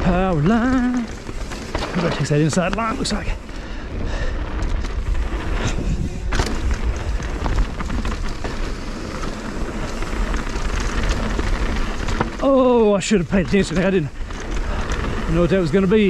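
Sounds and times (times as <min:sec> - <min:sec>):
bike knocking on bumps: 0:00.0 - 0:16.0
tyres over dirt and stones: 0:00.0 - 0:16.0
wind noise on microphone: 0:04.0 - 0:08.8.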